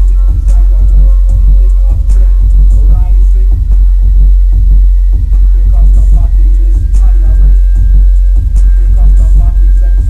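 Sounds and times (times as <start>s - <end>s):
loud dubstep with heavy sub-bass: 0.0s - 10.0s.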